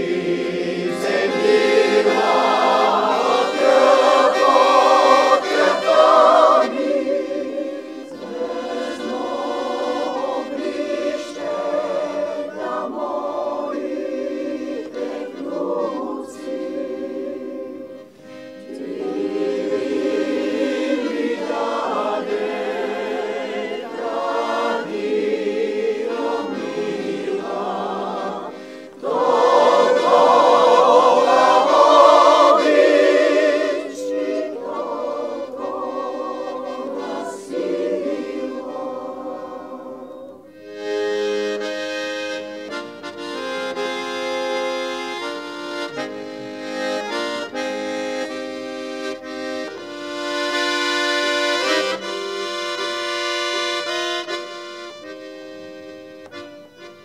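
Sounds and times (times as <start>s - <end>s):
mixed choir singing: 0.0s - 41.2s
accordion: 0.0s - 57.0s.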